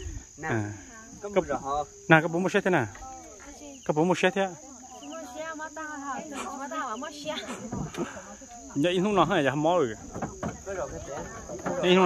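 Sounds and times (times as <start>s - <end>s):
insects chirring: 0.0s - 12.0s
people's voices: 0.0s - 12.0s.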